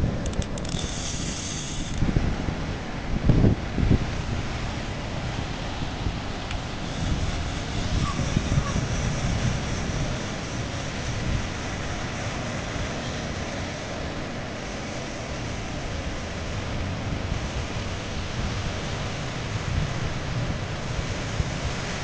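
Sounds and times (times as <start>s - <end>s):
surf washing: 0.0s - 22.0s
wind buffeting microphone: 0.0s - 22.0s.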